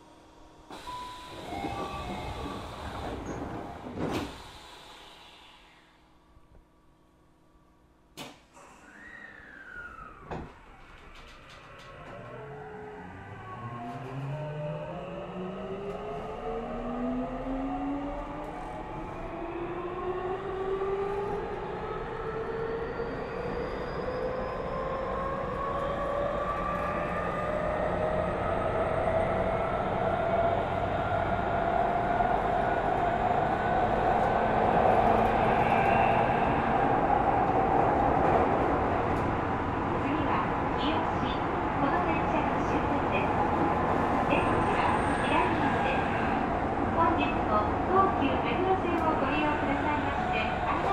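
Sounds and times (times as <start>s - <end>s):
electric train motor tones rising: 8.8s - 16.9s.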